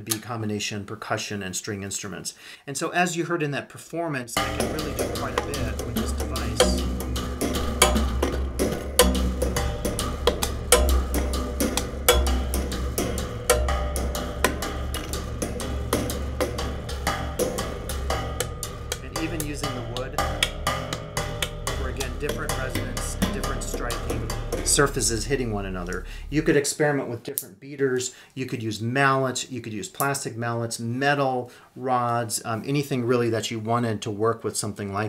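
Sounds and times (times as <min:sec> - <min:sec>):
low resonant hum: 0:04.4 - 0:26.6.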